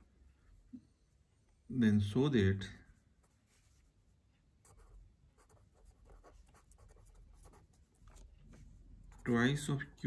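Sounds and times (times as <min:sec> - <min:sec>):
pen scratching on paper: 0:04.6 - 0:08.3, 0:09.0 - 0:09.7.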